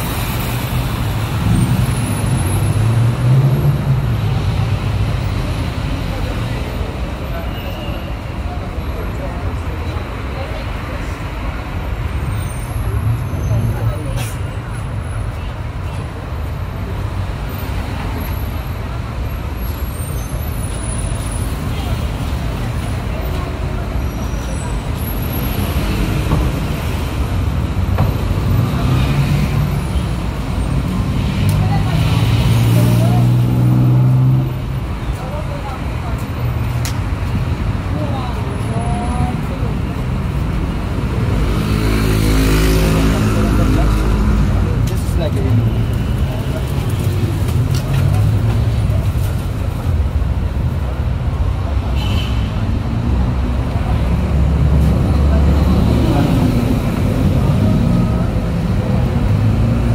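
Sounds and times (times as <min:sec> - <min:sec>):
passing traffic: 0:00.0 - 0:59.9.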